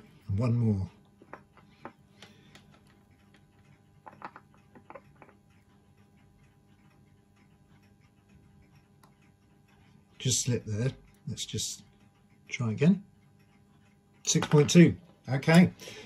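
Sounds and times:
metal probe tips clicking: 4.0 - 5.3.

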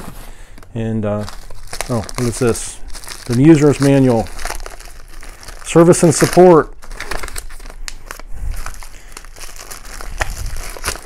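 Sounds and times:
plastic wrapping and paper crinkling: 0.0 - 11.0.

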